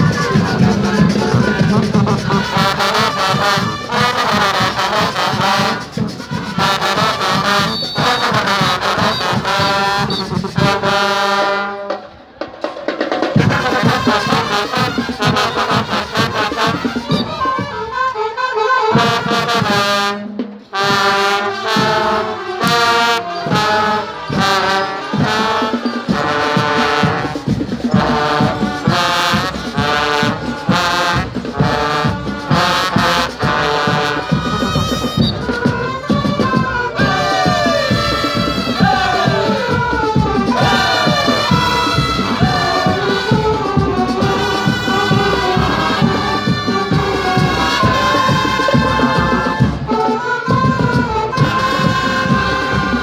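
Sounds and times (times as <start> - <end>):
driving beat: 0.0 - 11.2, 20.5 - 53.0
saxophones: 0.0 - 12.3, 13.3 - 53.0
marching band playing: 0.0 - 53.0
trombones: 0.0 - 53.0.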